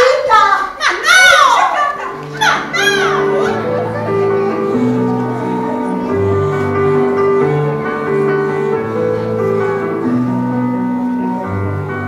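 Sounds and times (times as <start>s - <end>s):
high gull-like cry: 0.8s - 4.8s
soft music with held notes: 1.7s - 12.0s.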